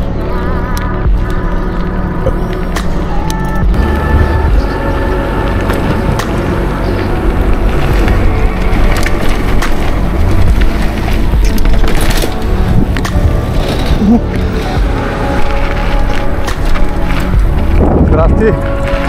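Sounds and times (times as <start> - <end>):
background music: 0.0 - 19.0
bike tyres rolling: 0.0 - 19.0
bike knocks and rattles: 5.5 - 19.0.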